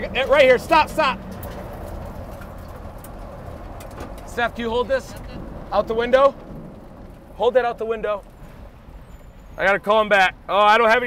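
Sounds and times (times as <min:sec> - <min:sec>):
storm wind rumble: 0:00.0 - 0:10.5
vehicle noise: 0:00.0 - 0:11.0.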